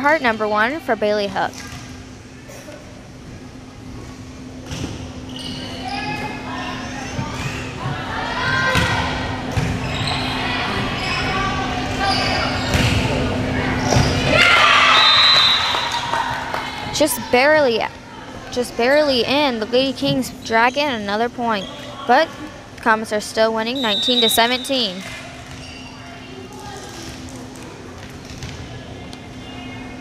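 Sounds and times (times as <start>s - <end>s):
volleyball thumps: 8.7s - 9.8s
crowd cheering: 14.0s - 18.4s
spectators shouting: 14.2s - 17.3s.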